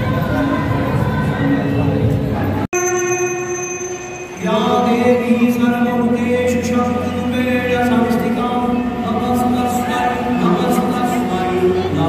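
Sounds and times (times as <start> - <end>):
crowd chatter: 0.0 - 12.0
devotional music over loudspeakers: 4.0 - 12.0.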